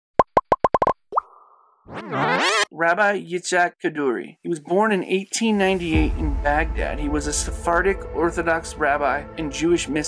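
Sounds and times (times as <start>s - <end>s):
cartoon pops: 0.2s - 2.6s
rising bloop: 0.2s - 2.7s
rising swoosh: 1.9s - 2.7s.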